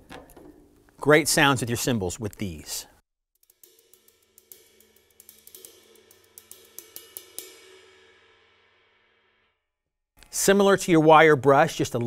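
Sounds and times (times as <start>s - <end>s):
light taps on cymbal: 3.4s - 8.2s.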